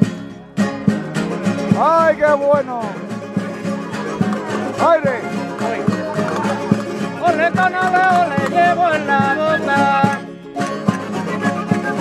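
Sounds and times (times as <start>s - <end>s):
strummed guitars and lute: 0.0s - 12.0s.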